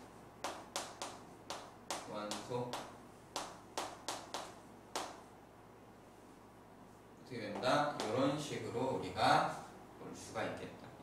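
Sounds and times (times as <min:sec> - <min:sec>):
chalk writing on chalkboard: 0:00.4 - 0:05.2.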